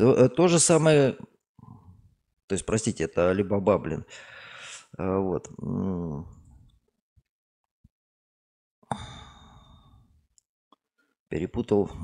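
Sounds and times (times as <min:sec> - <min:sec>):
man sighing: 0:08.8 - 0:10.0.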